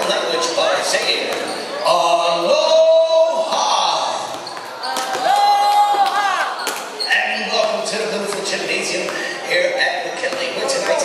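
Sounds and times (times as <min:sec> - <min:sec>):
basketballs bouncing on hardwood floor: 0:08.2 - 0:09.3, 0:10.1 - 0:11.0.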